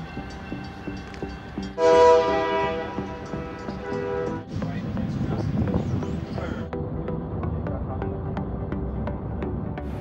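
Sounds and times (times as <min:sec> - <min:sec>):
train air horn blast: 0:01.8 - 0:04.4.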